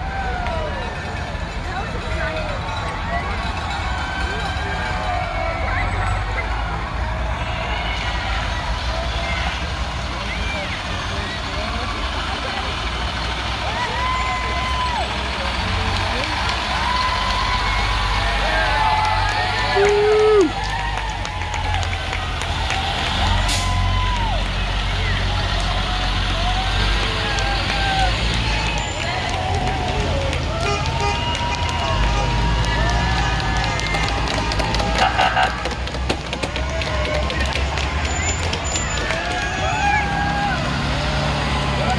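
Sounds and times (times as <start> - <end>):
buses driving past: 0.0 - 41.9
people shouting and cheering: 0.0 - 41.9
voices: 0.0 - 41.9.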